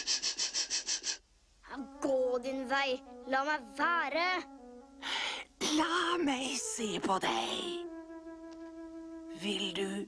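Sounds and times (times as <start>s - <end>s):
rapid rhythmic hissing: 0.0s - 1.6s.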